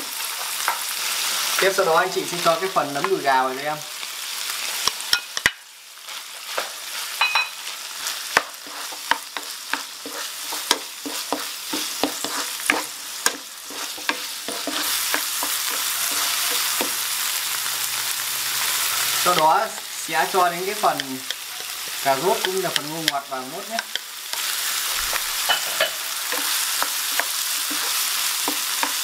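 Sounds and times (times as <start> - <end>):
meat sizzling in a frying pan: 0.0 - 29.0
wooden spatula scraping a pan: 6.1 - 17.1, 19.2 - 29.0.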